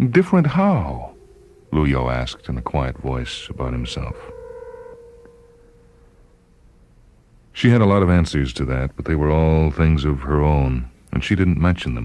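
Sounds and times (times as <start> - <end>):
electronic tone: 0.0 - 6.7
higher electronic tones: 0.0 - 7.1.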